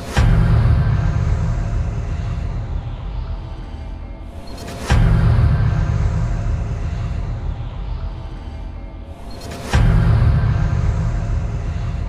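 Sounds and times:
dark intro music: 0:00.0 - 0:12.0.

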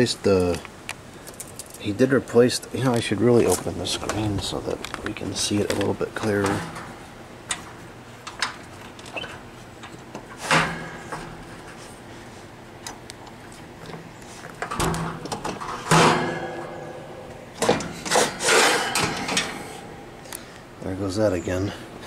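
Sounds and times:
window screen scraping and rattling: 0:17.6 - 0:19.9.

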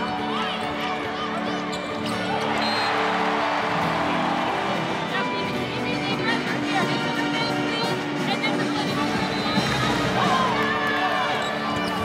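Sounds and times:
crowd cheering: 0:00.0 - 0:06.0, 0:09.0 - 0:12.0
background music: 0:00.0 - 0:12.0.

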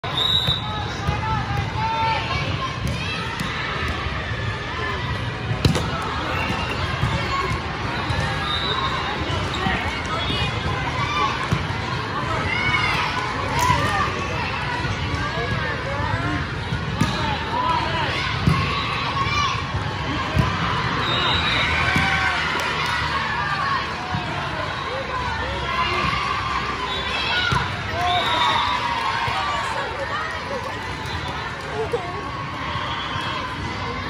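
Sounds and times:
voices in hall: 0:00.0 - 0:34.0
chatter and calls: 0:17.4 - 0:34.0.

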